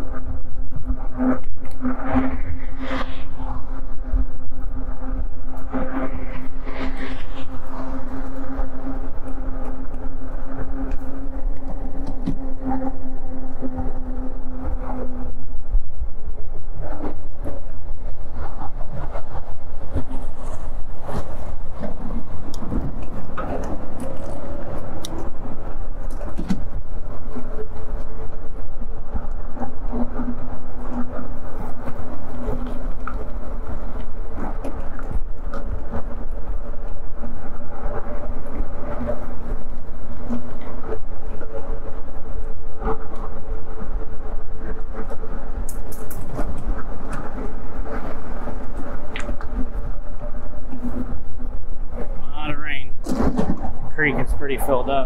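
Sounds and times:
wind rumble on microphone: 0.0 - 55.0.

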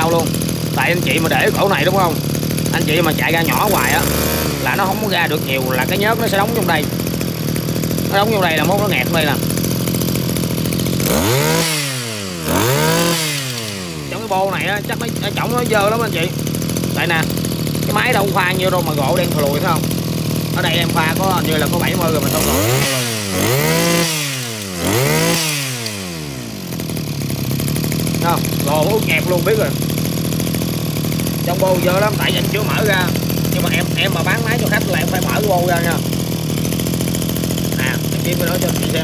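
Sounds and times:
brush cutter engine idling and revving: 0.0 - 39.0.

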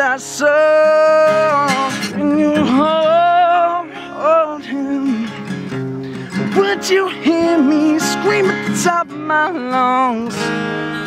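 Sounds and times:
man singing long sliding notes: 0.0 - 5.4
strummed acoustic guitar: 0.0 - 11.0.

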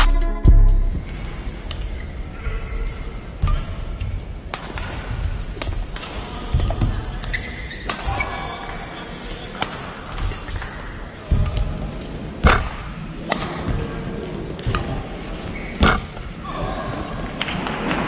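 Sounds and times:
indoor arena hum: 0.0 - 18.0.

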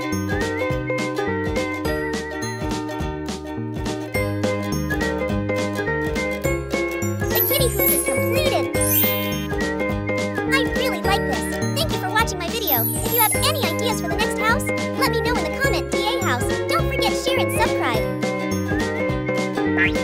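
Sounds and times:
cheerful children's music: 0.0 - 20.0.

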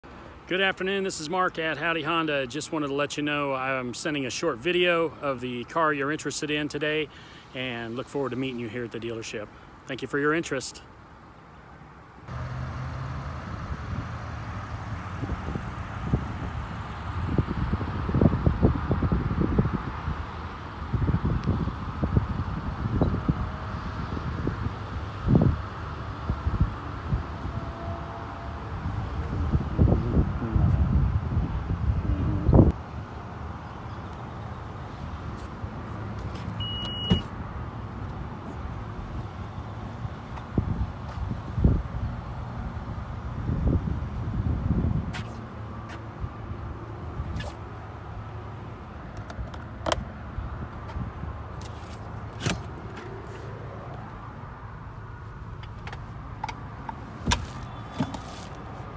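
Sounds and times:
wind buffeting microphone: 13.5 - 27.7, 28.7 - 32.8, 43.2 - 45.2
short high beep: 36.6 - 37.3.

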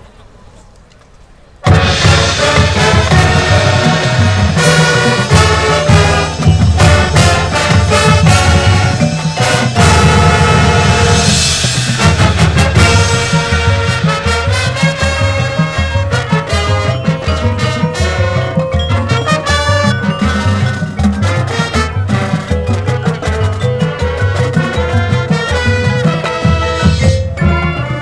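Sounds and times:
drums and mallet percussion: 1.6 - 28.0
marching band brass: 1.6 - 28.0.

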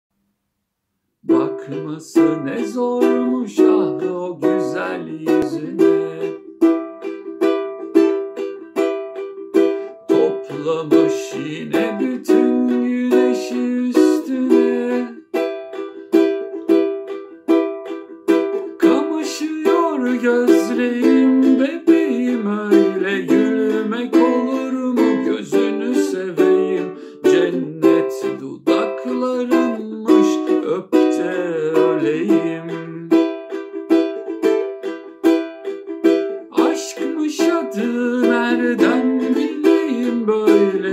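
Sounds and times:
man singing: 1.2 - 7.2, 9.7 - 15.5, 18.6 - 34.8, 36.0 - 40.9
ukulele strumming: 1.2 - 40.9.

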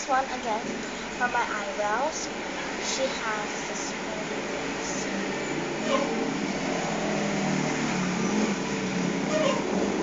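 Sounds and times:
ceiling fan whirring: 0.0 - 10.0.

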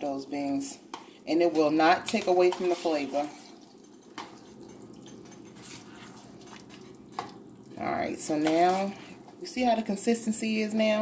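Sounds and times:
spoon stirring wet beans: 0.9 - 9.7.

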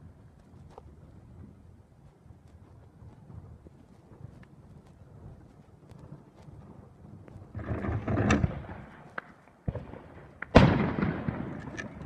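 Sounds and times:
faint low rumble: 0.0 - 12.0
fireworks booming: 7.4 - 12.0.

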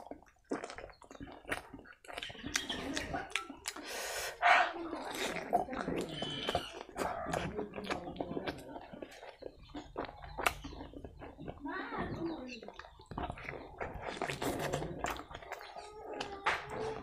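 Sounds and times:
wet chewing and lip smacking: 0.0 - 17.0.

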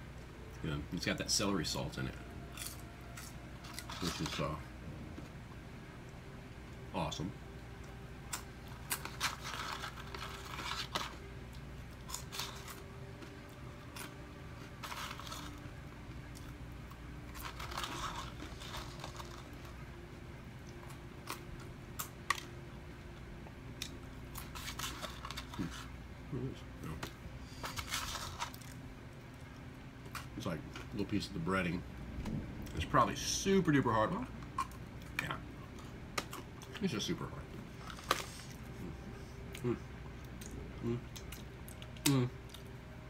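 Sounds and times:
person chewing: 2.5 - 4.3, 37.8 - 42.7.

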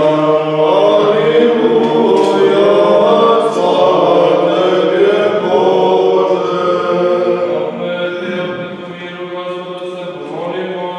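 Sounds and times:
group singing liturgical chant: 0.0 - 10.9.

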